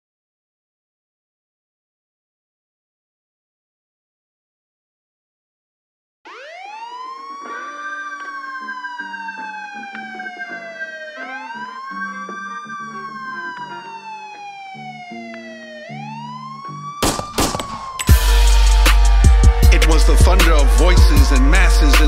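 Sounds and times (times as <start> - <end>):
police siren wailing: 6.3 - 22.0
drum hits: 17.0 - 21.4.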